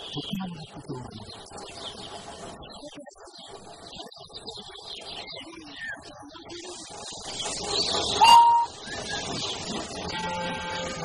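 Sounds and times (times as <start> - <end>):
steam hissing: 0.0 - 11.0
steam whistle blast: 8.2 - 8.9, 10.1 - 11.0.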